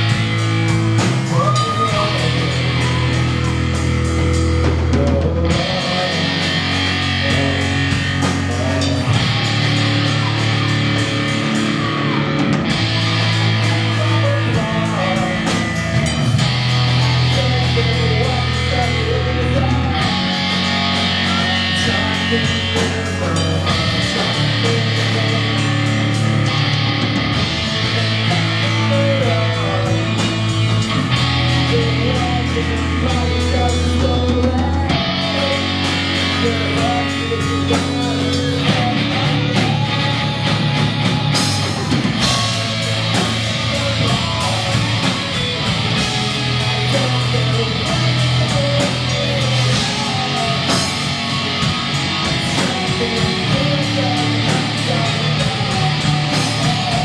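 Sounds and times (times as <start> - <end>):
bass guitar: 0.0 - 57.0
distorted electric guitars: 0.0 - 57.0
drum kit with cymbal hits: 0.0 - 57.0.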